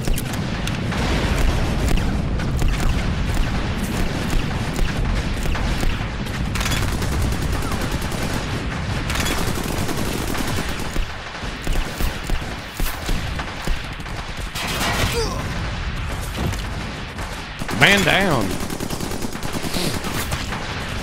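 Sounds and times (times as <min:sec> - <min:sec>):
rapid gunfire: 0:00.0 - 0:21.0
deep explosion booms: 0:00.3 - 0:09.3, 0:10.2 - 0:18.4.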